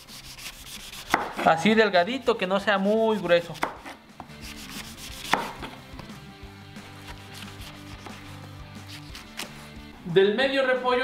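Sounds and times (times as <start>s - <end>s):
knife slicing cabbage on wooden board: 0.1s - 1.5s, 3.5s - 5.8s, 7.0s - 9.6s.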